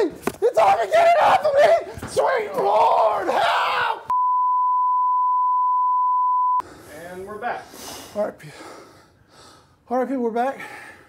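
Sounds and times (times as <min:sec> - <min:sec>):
television test tone: 0:04.1 - 0:06.6.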